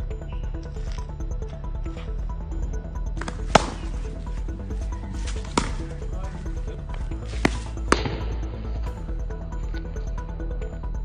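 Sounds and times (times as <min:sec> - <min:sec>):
background music: 0:00.0 - 0:11.0
cricket bat hitting ball: 0:03.2 - 0:04.0, 0:05.3 - 0:06.0, 0:07.3 - 0:08.4.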